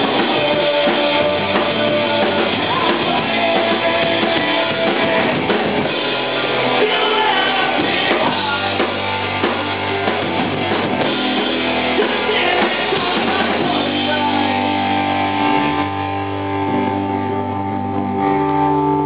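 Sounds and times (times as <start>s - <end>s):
punk rock band playing live: 0.0s - 19.0s.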